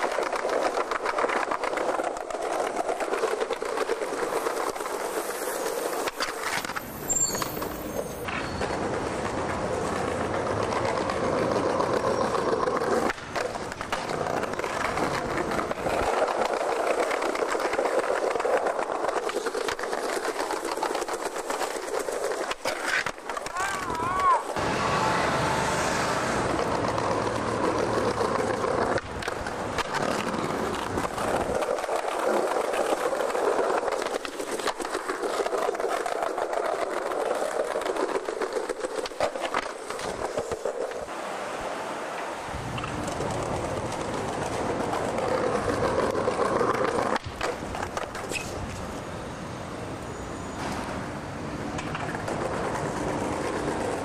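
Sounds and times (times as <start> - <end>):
skateboard wheels rolling on concrete: 0.0 - 54.0.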